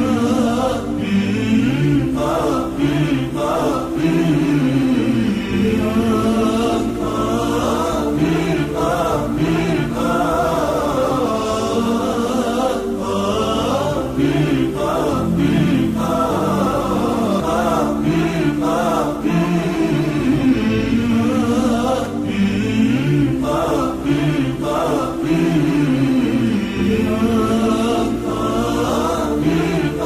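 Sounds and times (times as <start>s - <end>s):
several voices chanting: 0.0s - 30.0s.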